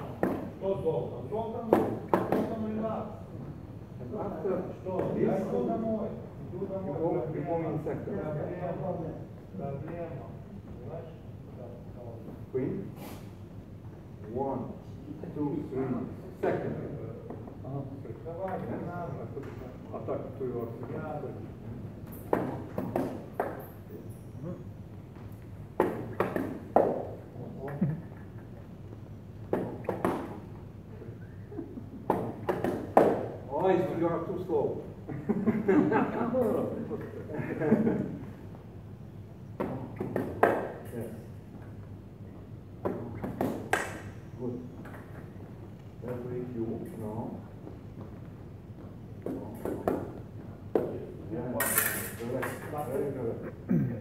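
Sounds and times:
fencing sabres clashing: 22.0s - 24.3s, 25.8s - 27.2s, 29.4s - 30.6s, 32.0s - 33.4s, 42.8s - 44.2s, 49.2s - 53.0s.

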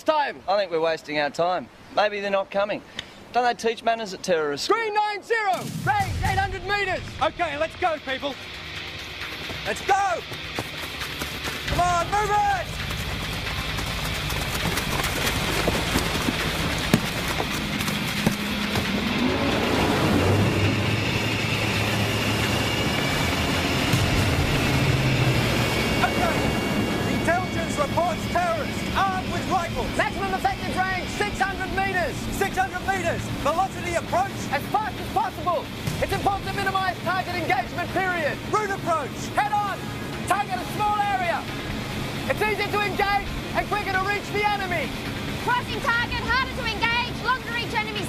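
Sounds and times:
dramatic music score: 5.6s - 48.0s
engine running: 5.6s - 48.0s
rising sweep: 11.6s - 31.9s.

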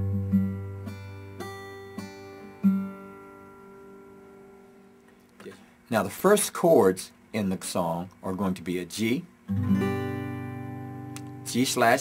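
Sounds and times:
acoustic guitar plucked notes: 0.0s - 5.0s, 9.5s - 12.0s.

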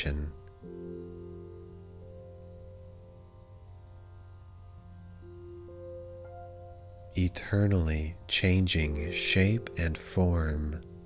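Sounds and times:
ambient music with held tones: 0.0s - 11.0s
high steady chirring: 0.0s - 11.0s
low drone: 0.0s - 11.0s.

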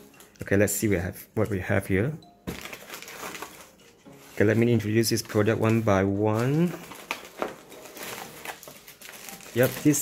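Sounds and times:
plastic packaging crinkling: 2.5s - 10.0s.

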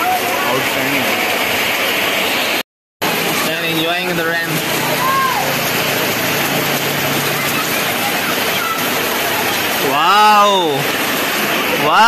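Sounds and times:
heavy rain: 0.0s - 12.0s.

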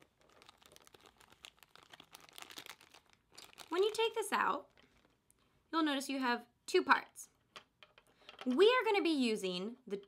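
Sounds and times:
plastic bag crinkling: 0.0s - 5.3s.

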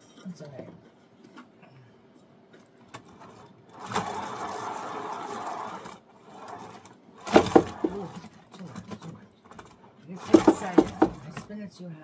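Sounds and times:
turntable whirring rush: 3.8s - 8.2s, 10.2s - 11.4s.

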